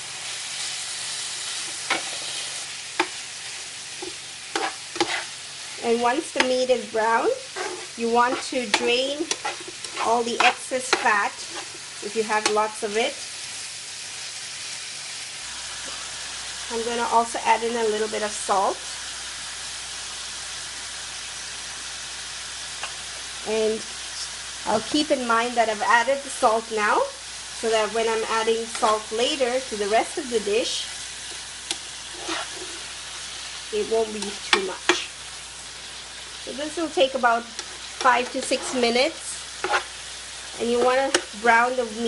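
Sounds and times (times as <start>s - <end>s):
meat sizzling in a pan: 0.0s - 42.0s
spatula turning meat: 0.2s - 12.9s, 27.6s - 42.0s.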